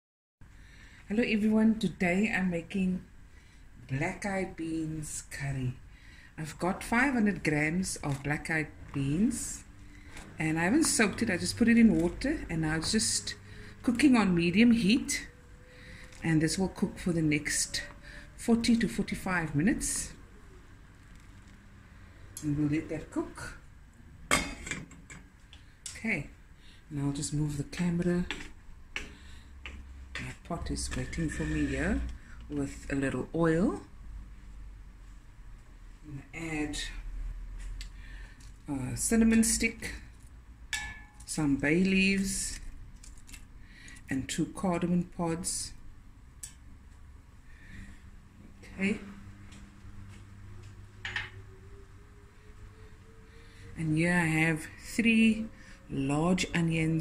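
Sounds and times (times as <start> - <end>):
low steady hum: 0.4 - 57.0.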